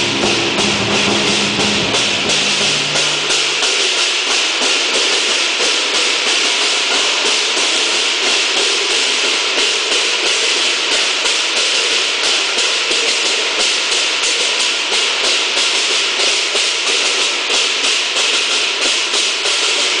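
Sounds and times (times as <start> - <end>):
cymbals clashing: 0.0 - 20.0.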